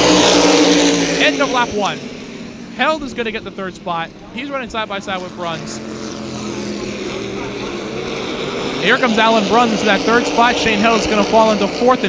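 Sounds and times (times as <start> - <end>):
race car engines droning: 0.0 - 12.0
man's voice: 1.2 - 2.0.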